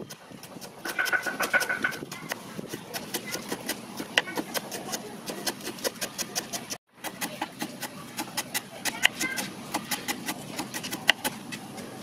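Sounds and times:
knife chopping on wooden board: 0.4s - 11.6s.

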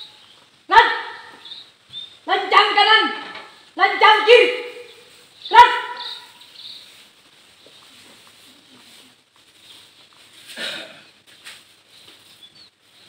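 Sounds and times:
dog bark: 5.5s - 6.4s.

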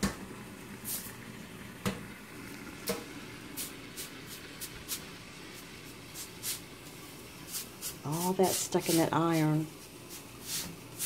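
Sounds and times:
steam iron hissing and spitting: 2.9s - 11.0s.

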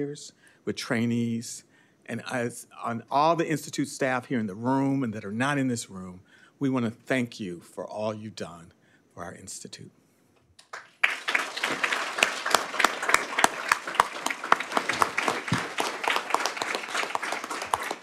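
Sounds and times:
audience applauding: 10.6s - 18.0s.

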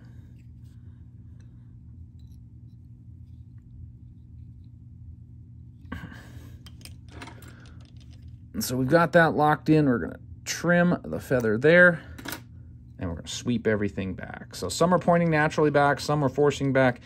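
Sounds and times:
low hum: 0.0s - 17.0s
thread clicks and rustles: 6.6s - 8.4s.

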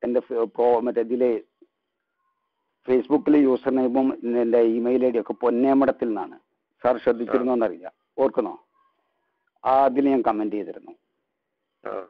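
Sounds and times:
man talking: 0.0s - 1.5s, 2.9s - 8.6s, 9.6s - 11.0s.

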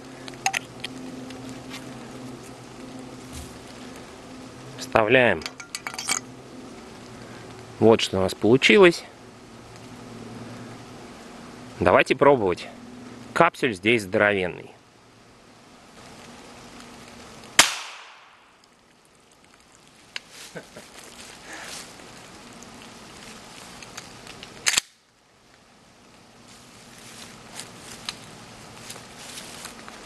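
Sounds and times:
sharp gunshot crack: 17.6s - 18.4s.

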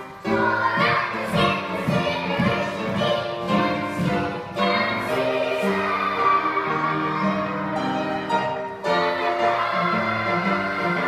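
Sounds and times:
children singing: 0.0s - 11.0s
musical accompaniment: 0.0s - 11.0s.

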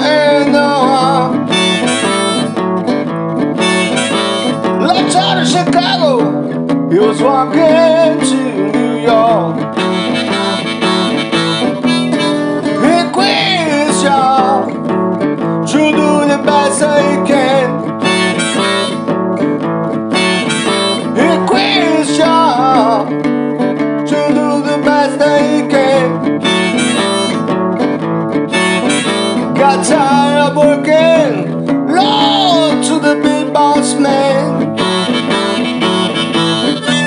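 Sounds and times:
blues harmonica: 0.0s - 37.0s
guitar backing: 0.0s - 37.0s.

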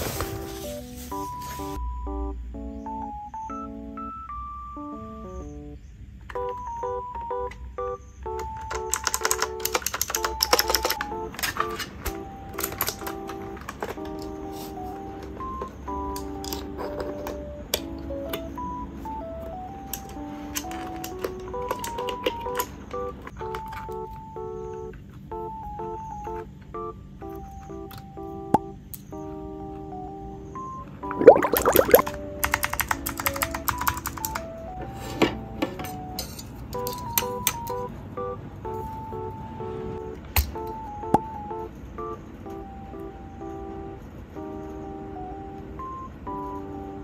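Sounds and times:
gentle background music: 0.0s - 47.0s
simple melody of clear tones: 0.0s - 47.0s
mechanical keyboard clicks: 8.3s - 14.4s, 19.8s - 24.2s, 32.0s - 34.5s, 36.8s - 37.9s.

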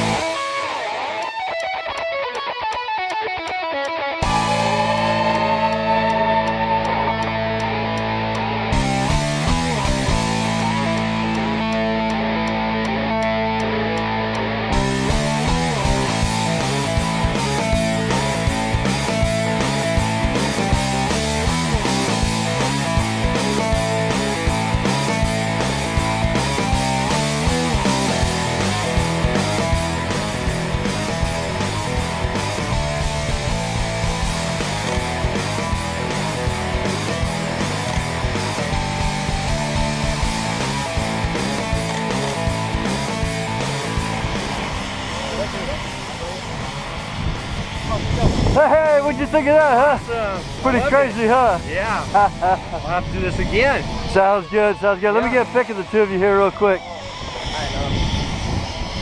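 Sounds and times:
rock music: 0.0s - 59.0s.

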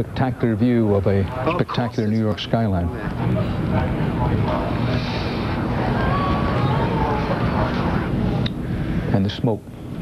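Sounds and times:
faint distant voices: 0.0s - 10.0s
rumbling city noise: 0.0s - 10.0s
wind: 0.0s - 10.0s.

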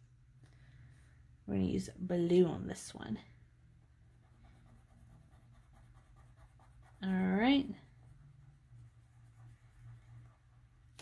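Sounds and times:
low steady hum: 0.0s - 11.0s
pen scratching on paper: 4.2s - 10.7s.

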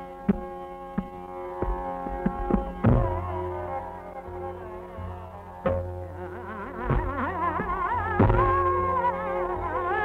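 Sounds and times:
tabla stroke: 0.0s - 10.0s.

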